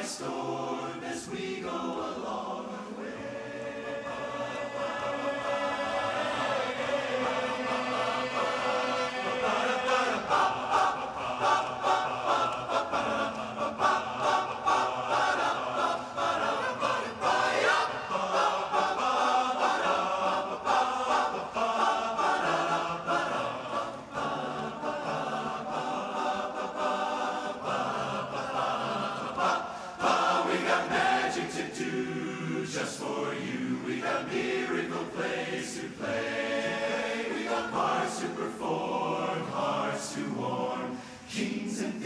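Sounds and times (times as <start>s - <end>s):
male chorus singing a cappella: 0.0s - 42.0s.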